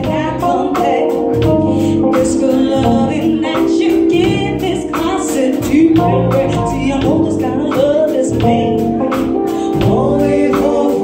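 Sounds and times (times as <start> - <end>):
drums beat: 0.0 - 11.0
guitars: 0.0 - 11.0
keyboard: 0.0 - 11.0
person singing: 0.0 - 11.0.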